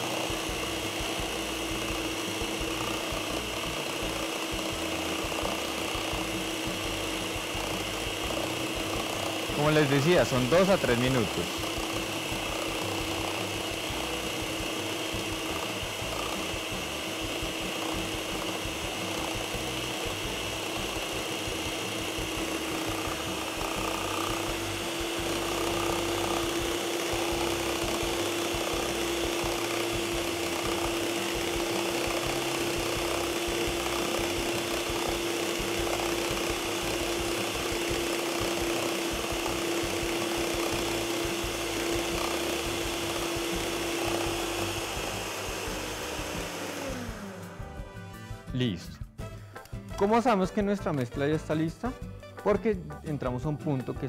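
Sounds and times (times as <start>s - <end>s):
stand mixer motor humming: 0.0s - 48.0s.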